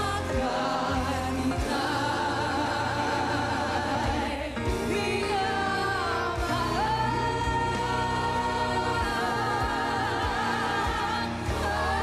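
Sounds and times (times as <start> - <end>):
instrumental backing music: 0.0 - 12.0
women singing with vibrato: 0.0 - 12.0.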